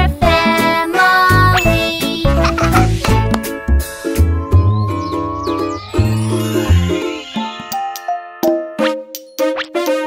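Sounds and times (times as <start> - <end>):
children's music: 0.0 - 10.0
cartoon chime jingle: 1.6 - 9.1.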